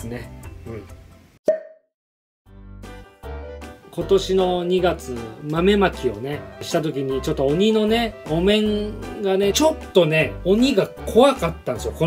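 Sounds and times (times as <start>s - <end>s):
background music: 0.0s - 1.4s, 2.5s - 12.0s
pitched pop sound effect: 1.4s - 1.9s.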